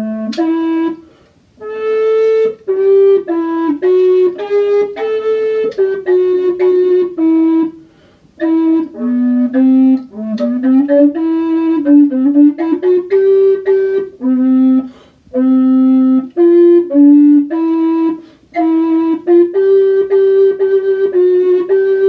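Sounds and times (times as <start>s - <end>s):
recorder slow melody: 0.0s - 22.0s
short breaths: 1.0s - 1.5s, 7.8s - 8.4s, 14.9s - 15.3s, 18.2s - 18.5s.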